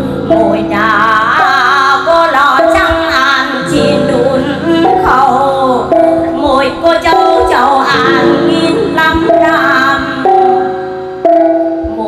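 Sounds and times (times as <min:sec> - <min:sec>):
woman singing: 0:00.0 - 0:10.9, 0:11.8 - 0:12.0
gongs ringing: 0:00.0 - 0:12.0.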